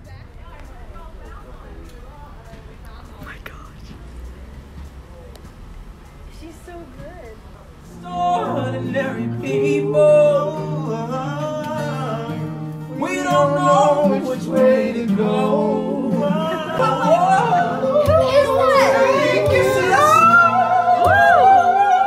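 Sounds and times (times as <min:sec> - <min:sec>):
men singing in harmony: 0:07.9 - 0:22.0.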